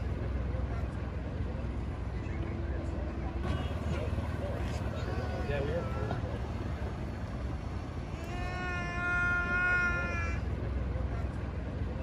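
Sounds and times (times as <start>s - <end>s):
boat motor rumble: 0.0s - 12.0s.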